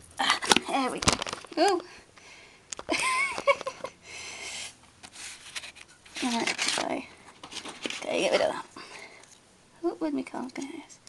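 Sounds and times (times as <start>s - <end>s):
woman laughing breathily: 2.9s - 4.6s.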